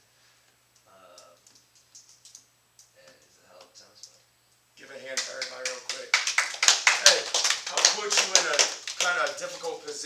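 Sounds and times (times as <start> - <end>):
men talking: 4.8 - 10.0
hand clapping: 5.1 - 10.0.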